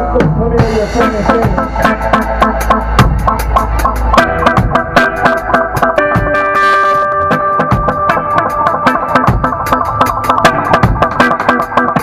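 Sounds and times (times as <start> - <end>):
live band with electric guitars: 0.0 - 12.0.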